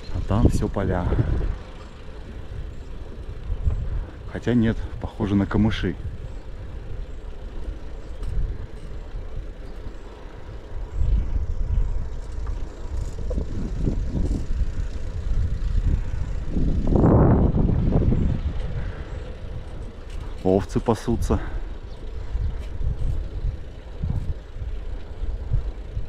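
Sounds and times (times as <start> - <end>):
bicycle tyres on asphalt: 0.0 - 26.0
wind rumbling on microphone: 0.0 - 26.0.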